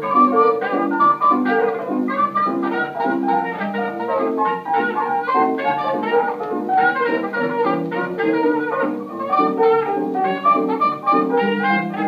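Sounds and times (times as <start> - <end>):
old jazz band record playing: 0.0 - 12.0.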